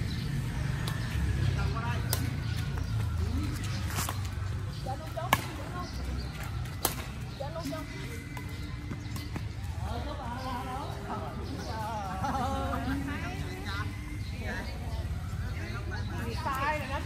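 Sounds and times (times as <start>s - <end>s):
rackets hitting shuttlecock: 5.0s - 7.3s.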